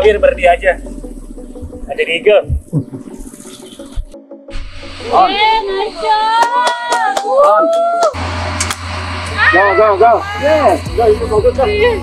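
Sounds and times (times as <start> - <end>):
low dull thumps: 0.0 - 5.6
man laughing: 2.4 - 3.4.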